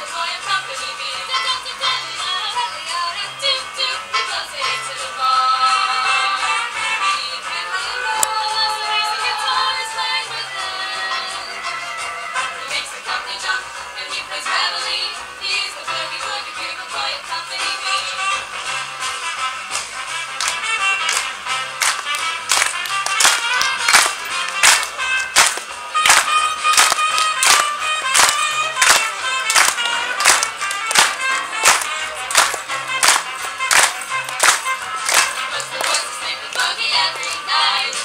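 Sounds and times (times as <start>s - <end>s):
women singing a cappella: 0.0s - 11.9s, 12.5s - 18.2s, 35.5s - 38.0s
crowd clapping along: 19.7s - 38.0s.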